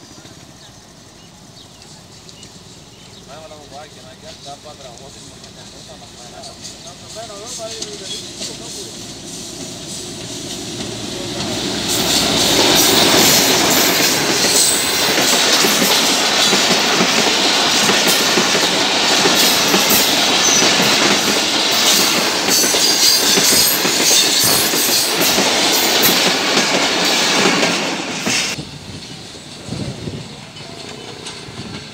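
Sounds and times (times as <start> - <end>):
diesel locomotive noise: 0.0 - 31.9
rush of train coaches: 0.0 - 31.9
wheels clicking over rail joints: 4.8 - 9.0.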